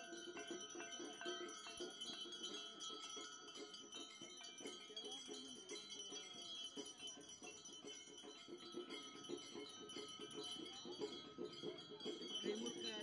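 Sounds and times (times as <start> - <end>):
faint ringing bells and chimes: 0.0 - 13.0.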